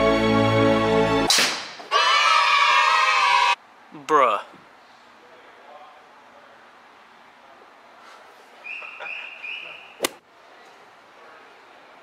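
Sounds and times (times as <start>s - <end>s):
sharp crack: 1.3s - 1.9s, 10.0s - 10.2s.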